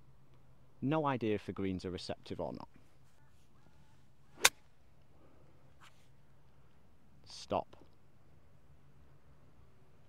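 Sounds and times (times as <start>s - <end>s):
golf club striking ball: 4.4s - 4.6s.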